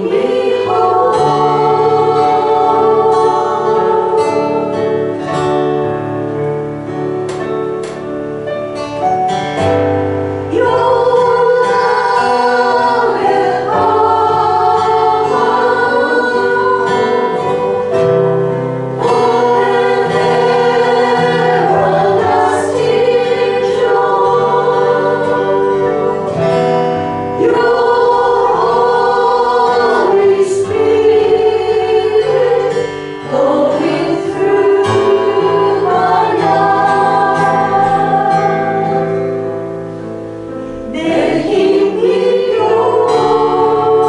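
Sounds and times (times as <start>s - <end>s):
several voices singing worship song: 0.0s - 5.8s, 10.5s - 44.0s
instrumental accompaniment: 0.0s - 44.0s.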